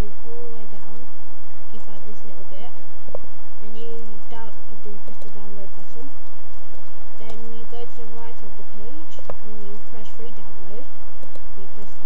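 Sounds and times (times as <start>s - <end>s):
loud low hum: 0.0s - 12.0s.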